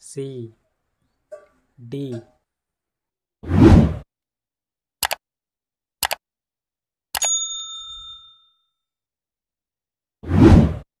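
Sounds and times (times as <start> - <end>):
bell ding: 7.2 - 8.9.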